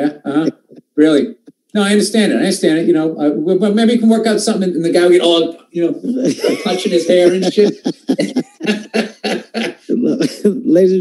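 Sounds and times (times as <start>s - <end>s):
man laughing: 6.0s - 10.6s.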